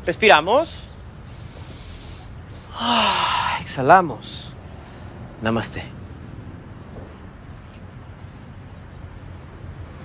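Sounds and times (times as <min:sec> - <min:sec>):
group breathing slowly: 0:01.2 - 0:03.6
loud breathy exhale: 0:01.3 - 0:03.6.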